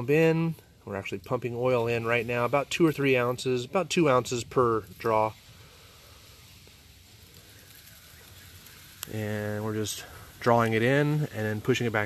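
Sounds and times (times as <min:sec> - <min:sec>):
faint background hum and hiss: 0:00.0 - 0:12.0.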